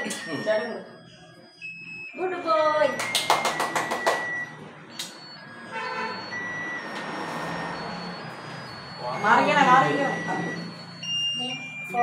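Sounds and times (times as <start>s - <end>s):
thin electronic beeping tones: 0.0s - 12.0s.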